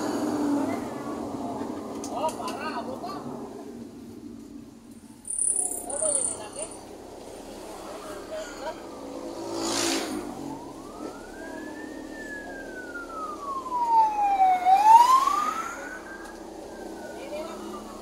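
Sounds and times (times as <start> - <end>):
vehicle road noise: 0.0 - 18.0
rushes of noise: 6.8 - 13.3
siren wailing: 8.7 - 18.0.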